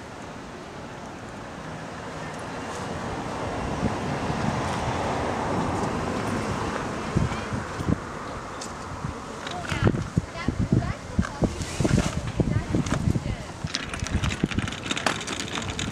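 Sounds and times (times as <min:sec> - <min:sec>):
car passing by: 0:01.3 - 0:09.3.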